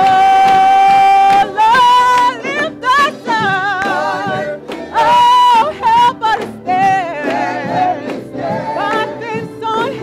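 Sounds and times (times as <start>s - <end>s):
woman singing lead: 0.0s - 7.7s, 8.6s - 10.0s
gospel choir singing: 0.0s - 10.0s.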